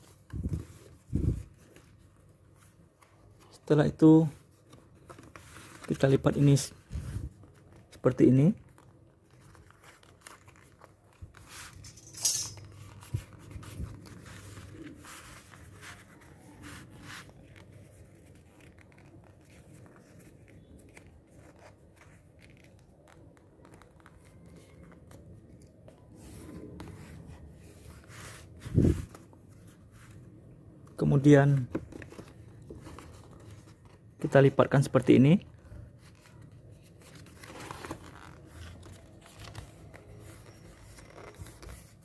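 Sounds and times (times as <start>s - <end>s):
paper rustling and crackling: 4.4s - 11.9s, 12.6s - 34.5s, 35.6s - 42.0s.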